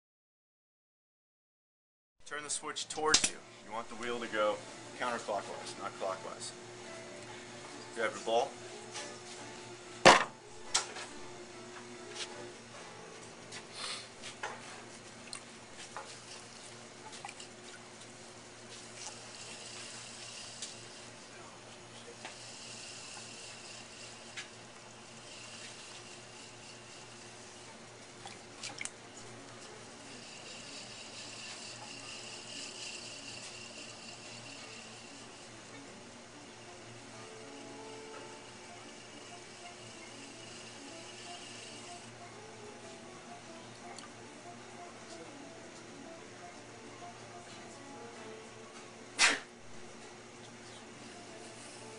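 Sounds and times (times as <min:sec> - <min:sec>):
pottery wheel humming: 0:02.2 - 0:51.9
clay slapped onto wheel: 0:03.1 - 0:03.4, 0:10.0 - 0:11.1, 0:49.2 - 0:49.5.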